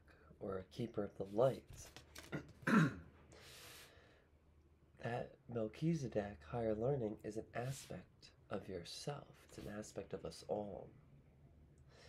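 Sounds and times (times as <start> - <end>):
person clearing throat: 2.3 - 3.1
soft hiss: 5.0 - 11.0.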